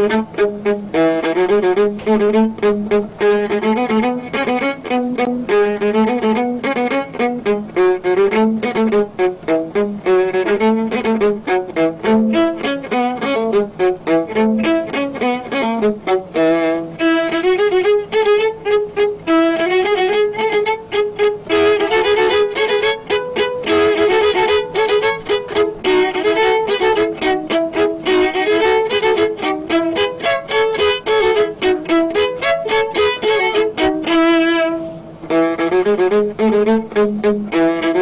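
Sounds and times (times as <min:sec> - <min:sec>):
violas playing detached notes: 0:00.0 - 0:38.0.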